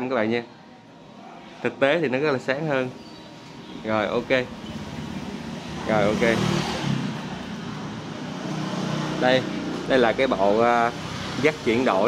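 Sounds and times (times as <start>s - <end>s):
road traffic rumble: 1.0s - 12.0s.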